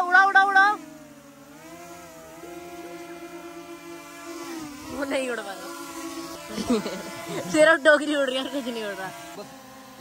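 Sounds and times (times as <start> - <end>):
drone propellers whining: 0.0 - 10.0.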